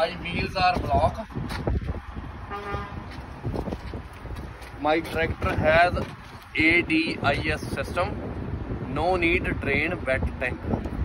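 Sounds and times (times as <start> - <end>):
distant vehicle horn toot: 2.5 - 3.0.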